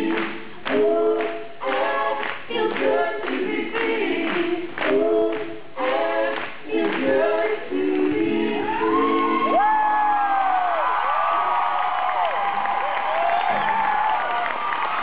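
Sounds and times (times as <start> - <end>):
concert vocals sung in harmony: 0.0 - 9.6
crowd cheering: 8.6 - 15.0.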